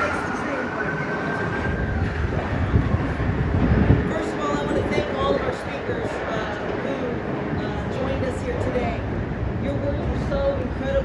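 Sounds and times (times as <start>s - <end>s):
high-pitched squeal: 0.0s - 3.6s
vehicle rumble passing: 0.0s - 11.0s.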